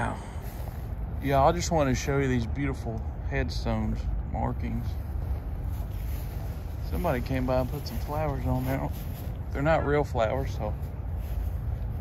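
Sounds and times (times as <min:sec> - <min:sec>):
wind rumble on microphone: 0:04.3 - 0:12.0.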